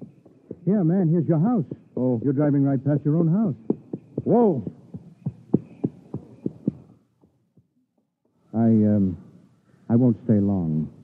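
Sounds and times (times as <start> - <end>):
horse hoofbeats: 0.0 - 7.7.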